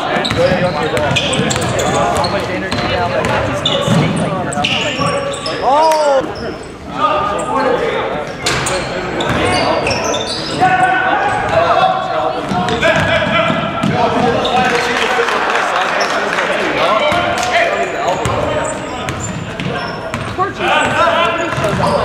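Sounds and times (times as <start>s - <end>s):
people talking and calling out: 0.0s - 22.0s.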